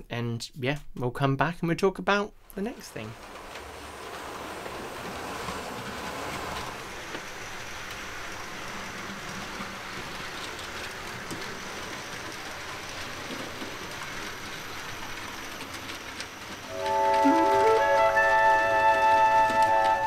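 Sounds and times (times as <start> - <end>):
model train running on track: 2.6 - 20.0.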